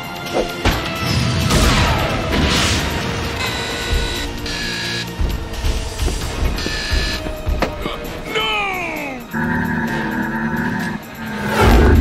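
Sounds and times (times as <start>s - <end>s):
background music: 0.0s - 12.0s
low thuds: 3.8s - 8.2s.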